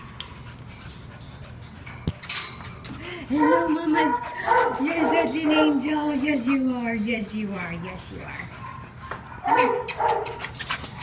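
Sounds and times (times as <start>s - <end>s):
dog panting: 0.2s - 11.0s.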